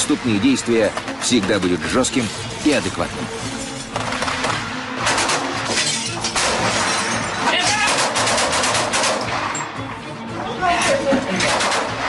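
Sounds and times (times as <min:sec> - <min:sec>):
background music: 0:00.0 - 0:12.0
glass shattering: 0:03.6 - 0:09.7
gunfire bangs: 0:05.0 - 0:09.5, 0:11.4 - 0:12.0.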